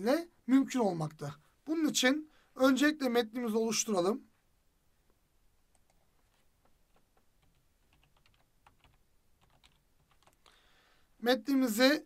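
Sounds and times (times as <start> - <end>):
computer keyboard keystrokes: 6.9 - 10.4.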